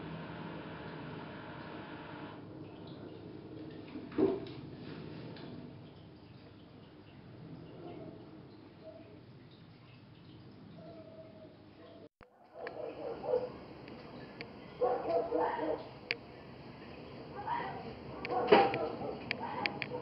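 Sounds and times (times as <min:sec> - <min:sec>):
outdoor background noise: 0:00.0 - 0:20.0
distant fox barking: 0:12.5 - 0:13.7, 0:17.4 - 0:20.0.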